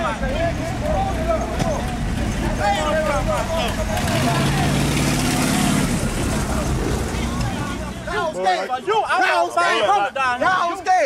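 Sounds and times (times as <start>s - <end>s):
car engine running: 0.0s - 8.2s
voices talking: 0.0s - 11.0s.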